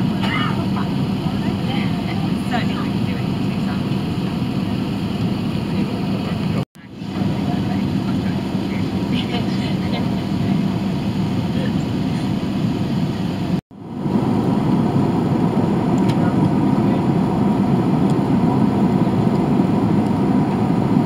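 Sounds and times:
airplane cabin drone: 0:00.0 - 0:21.0.

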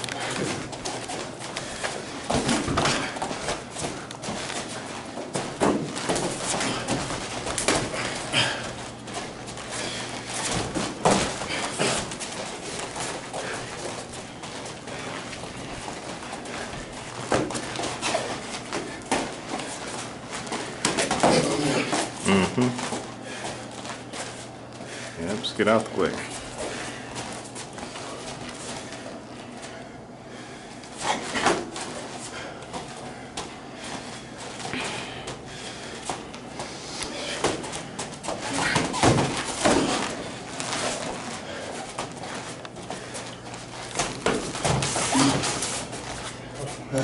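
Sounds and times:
shoes moving on mats: 0:00.0 - 0:22.2, 0:30.8 - 0:47.0.

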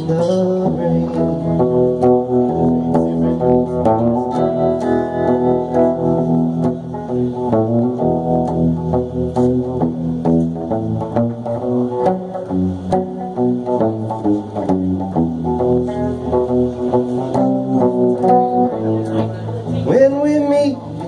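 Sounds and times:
electric guitar solo: 0:00.0 - 0:21.0
low bass notes: 0:00.0 - 0:21.0.

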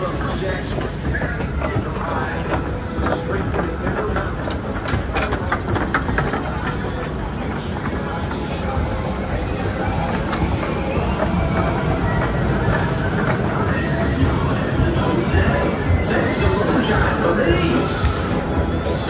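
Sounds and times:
lift mechanism rumbling and rattling: 0:00.0 - 0:19.0.

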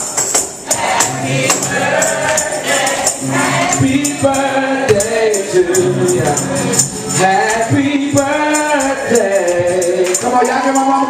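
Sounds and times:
congregation singing gospel: 0:00.0 - 0:11.0
tambourine shaken and struck: 0:00.0 - 0:11.0.

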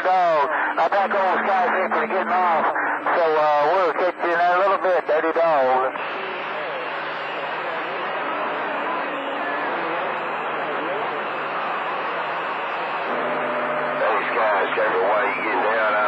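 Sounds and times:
faint garbled radio voices: 0:00.0 - 0:16.0
radio static hiss: 0:00.0 - 0:16.0
low steady tone: 0:13.1 - 0:15.6.

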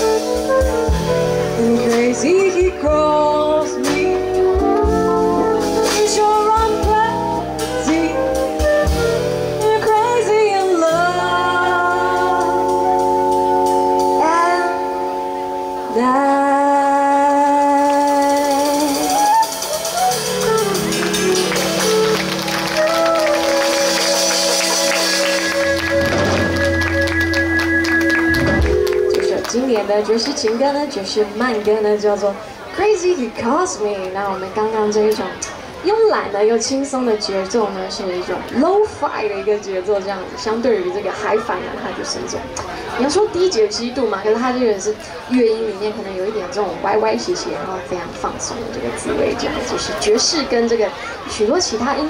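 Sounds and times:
flute: 0:00.0 - 0:02.6, 0:03.6 - 0:17.2, 0:17.8 - 0:29.9
woman singing jazz: 0:00.0 - 0:21.2, 0:28.9 - 0:32.0
electric bass: 0:00.0 - 0:29.5.

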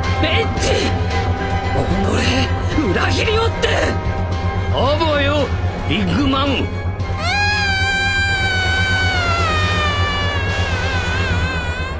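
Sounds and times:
high-pitched wailing scream: 0:07.2 - 0:11.9.

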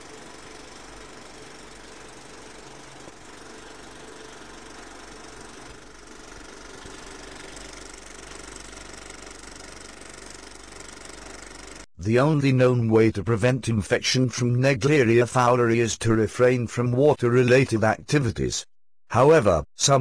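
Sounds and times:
film projector clattering: 0:00.0 - 0:11.8.

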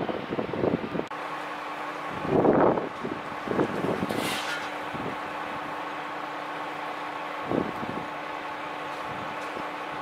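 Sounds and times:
wind on microphone: 0:00.0 - 0:01.1, 0:02.1 - 0:05.7, 0:07.4 - 0:08.1
engine idling: 0:01.1 - 0:10.0.

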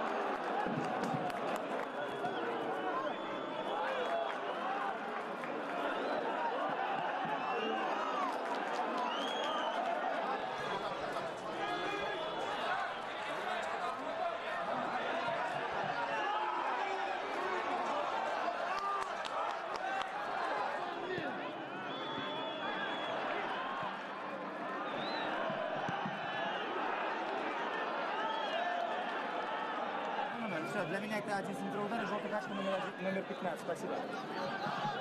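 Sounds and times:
players shouting: 0:00.2 - 0:08.4, 0:09.0 - 0:35.0.

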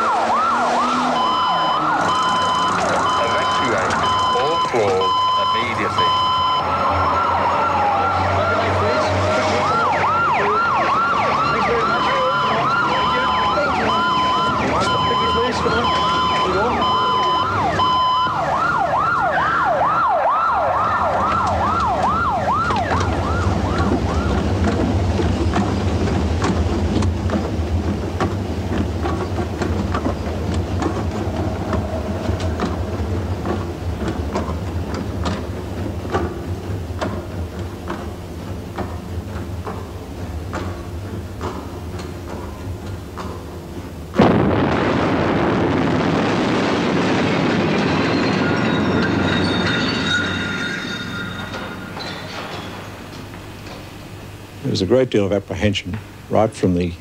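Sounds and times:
siren yelping: 0:00.0 - 0:24.5
siren wailing: 0:00.0 - 0:24.6
low engine rumble: 0:00.0 - 0:57.0
traffic: 0:00.0 - 0:57.0
electronic beeping alarm: 0:00.4 - 0:07.3, 0:11.0 - 0:18.4.

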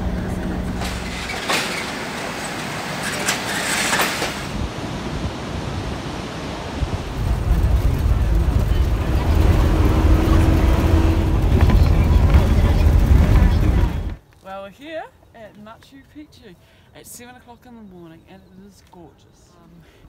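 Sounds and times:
vehicle rumbling on dirt road: 0:00.0 - 0:04.9, 0:06.9 - 0:14.2.

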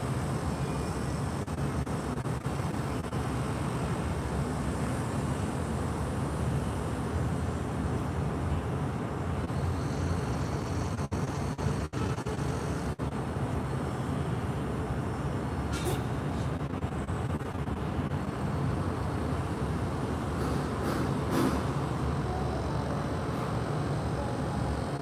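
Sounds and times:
low outdoor rumble: 0:00.0 - 0:25.0.

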